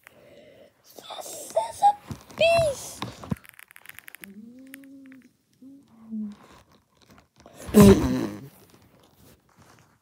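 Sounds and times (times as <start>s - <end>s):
person saying mm: 7.6s - 8.5s.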